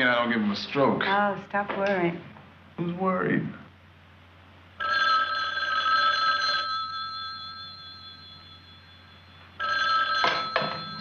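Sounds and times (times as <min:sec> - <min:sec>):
telephone bell ringing: 0:04.8 - 0:11.0.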